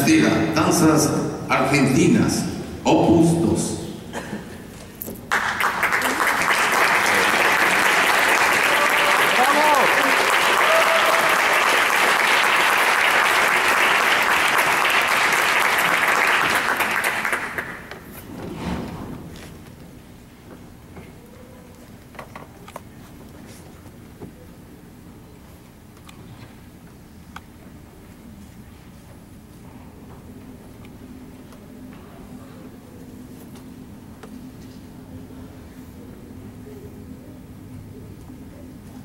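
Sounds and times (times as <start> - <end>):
audience applauding: 5.3 - 18.0.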